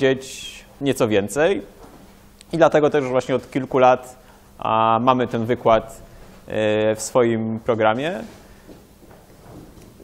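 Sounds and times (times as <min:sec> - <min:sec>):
man speaking: 0:00.0 - 0:01.8, 0:02.5 - 0:08.4.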